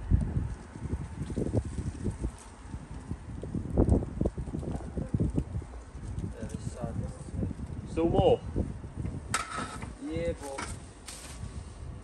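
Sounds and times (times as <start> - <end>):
brief rustle: 9.4 - 11.6.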